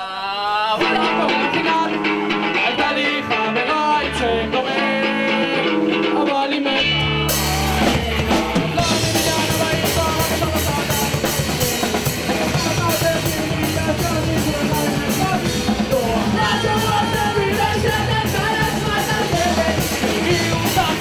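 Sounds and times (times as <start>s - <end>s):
electric guitar: 0.0s - 21.0s
bass guitar: 0.7s - 21.0s
drum kit and cymbals: 6.9s - 21.0s.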